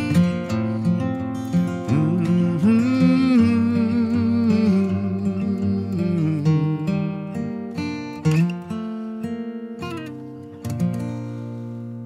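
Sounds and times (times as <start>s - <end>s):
acoustic guitar playing: 0.0s - 12.0s
man humming a melody: 1.8s - 7.3s.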